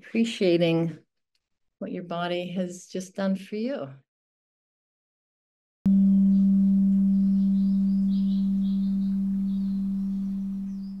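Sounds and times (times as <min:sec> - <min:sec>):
singing bowl ringing: 0:05.9 - 0:11.0.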